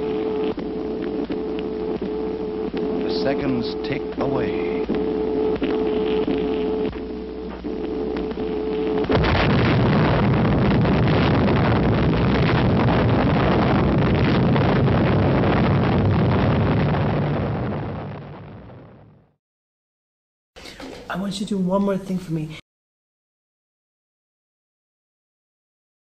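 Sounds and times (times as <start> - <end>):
steady hum: 0.0 - 19.3
explosion blast and rumble: 9.0 - 19.4.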